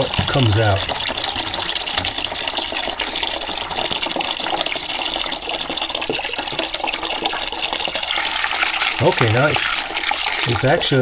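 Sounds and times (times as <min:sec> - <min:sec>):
water splashing into plastic bucket: 0:00.0 - 0:11.0.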